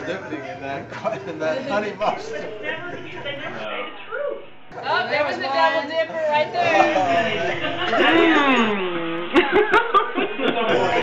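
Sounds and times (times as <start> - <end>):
people laughing: 6.7 - 11.0.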